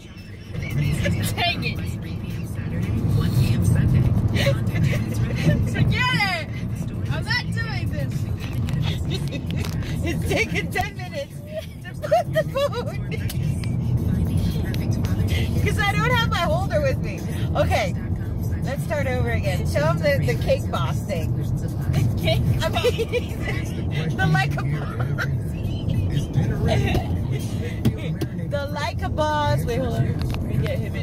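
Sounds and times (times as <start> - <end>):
car cabin rumble: 0.0 - 31.0.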